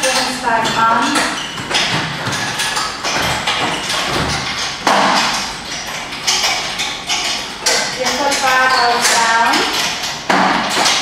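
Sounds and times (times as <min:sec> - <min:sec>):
knocks and thumps of wooden boxes: 0:00.0 - 0:11.0.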